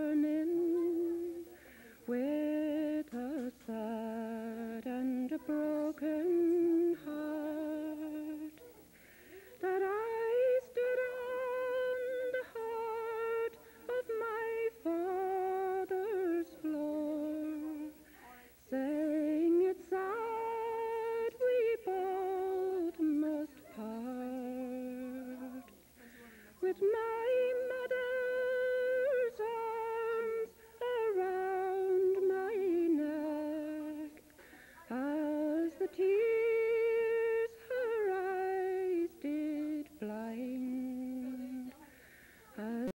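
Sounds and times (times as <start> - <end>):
woman singing: 0.0 - 42.9.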